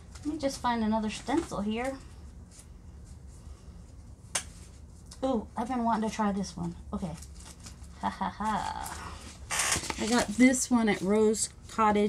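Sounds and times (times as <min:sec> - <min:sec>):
steady low hum: 0:00.0 - 0:12.0
papers rustling: 0:07.0 - 0:11.4.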